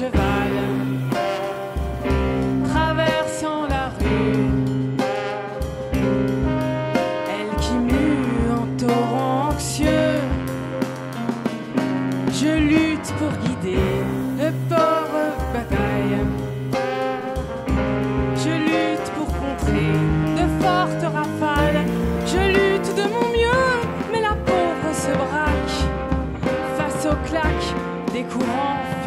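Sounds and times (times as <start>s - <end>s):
bass: 0.0s - 29.0s
drums: 0.0s - 29.0s
electric guitar: 0.0s - 29.0s
piano: 0.0s - 29.0s
trombone melody: 0.0s - 29.0s.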